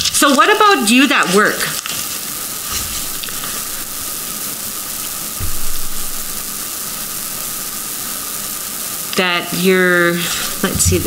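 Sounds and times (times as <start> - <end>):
recording hiss: 0.0 - 11.0
soft low bump: 5.4 - 6.7.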